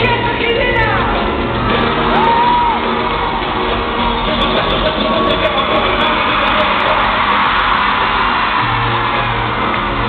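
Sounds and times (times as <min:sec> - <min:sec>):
live band in reverberant hall: 0:00.0 - 0:10.0.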